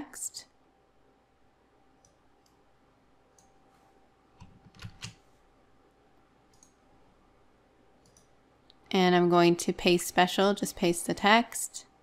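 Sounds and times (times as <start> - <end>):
computer mouse clicks: 2.0 - 2.6, 3.3 - 3.6, 6.5 - 6.8, 8.0 - 8.8.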